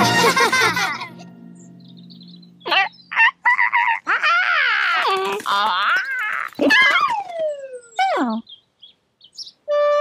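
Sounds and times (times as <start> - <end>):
cartoon bird calls: 2.6 - 8.5.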